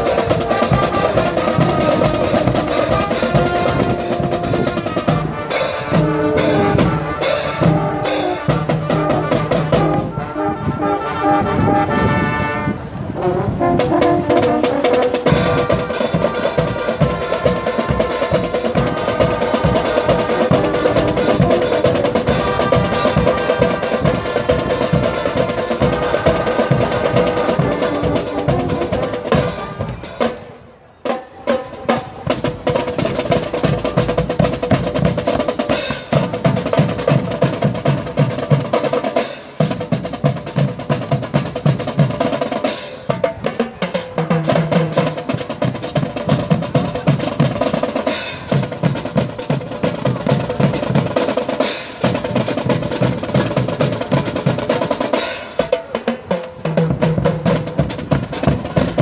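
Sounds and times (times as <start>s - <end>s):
rhythmic snare drum: 0.0s - 10.4s, 13.6s - 30.5s, 31.1s - 59.0s
brass sustained chords: 0.0s - 30.2s.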